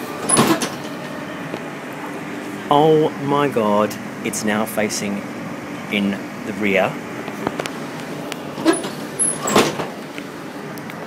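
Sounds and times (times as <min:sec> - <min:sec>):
train carriage running noise: 0:00.0 - 0:11.0.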